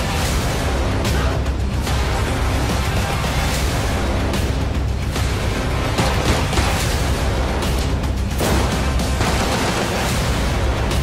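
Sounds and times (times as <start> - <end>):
action trailer score: 0.0 - 11.0
gunshots: 5.9 - 7.2, 8.3 - 10.8.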